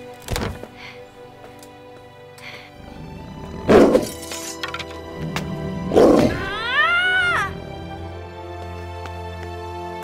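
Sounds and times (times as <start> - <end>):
soft orchestral music: 0.0 - 10.0
loud creature roar: 5.2 - 8.2.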